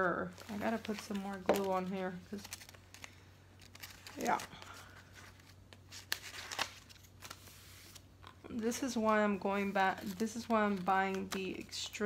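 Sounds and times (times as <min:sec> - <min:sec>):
paper rustling: 0:00.0 - 0:08.1, 0:08.7 - 0:12.0.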